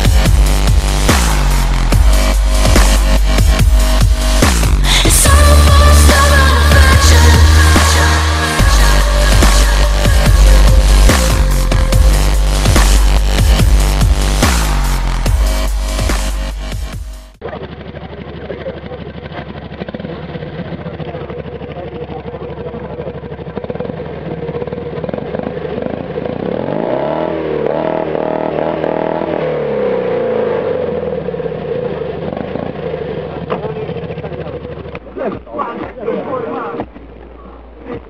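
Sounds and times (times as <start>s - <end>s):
small two-cylinder engine running: 17.4s - 29.3s, 30.3s - 35.9s.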